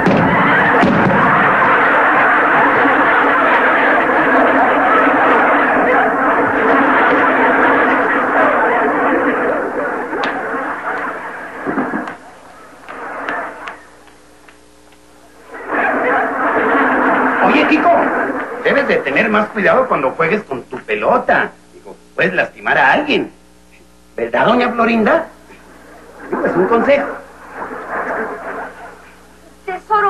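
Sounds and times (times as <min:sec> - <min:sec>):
studio audience laughing: 0:00.0 - 0:14.4, 0:15.2 - 0:20.2, 0:25.5 - 0:29.7.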